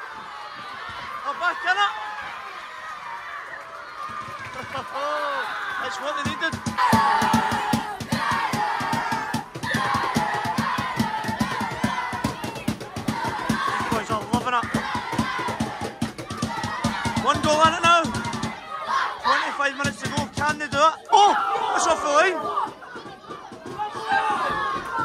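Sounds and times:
supporters chanting and singing: 0:05.8 - 0:25.0
fast steady drum beat: 0:06.1 - 0:18.6, 0:19.8 - 0:21.0.

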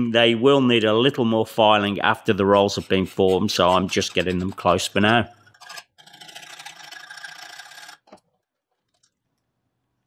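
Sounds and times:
hand file rasping on steel: 0:02.1 - 0:08.0.

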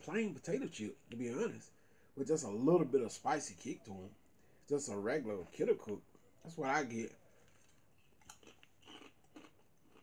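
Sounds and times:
person chewing potato chips: 0:07.3 - 0:10.0.

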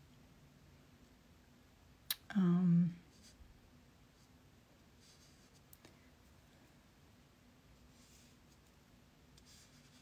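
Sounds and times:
quiet room hum: 0:00.0 - 0:10.0
brush stroking paint: 0:04.1 - 0:05.7, 0:07.8 - 0:10.0.

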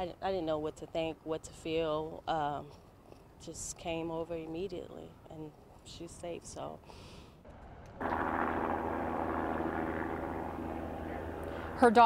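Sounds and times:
mechanical drone with hum: 0:07.5 - 0:12.0.

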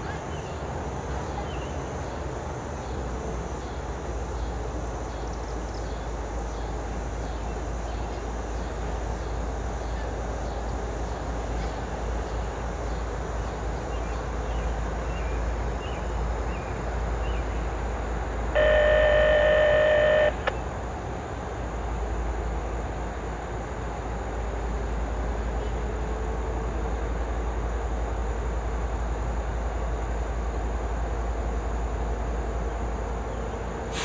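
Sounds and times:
locomotive idling: 0:00.0 - 0:34.0
loud steady tone: 0:16.7 - 0:21.0.

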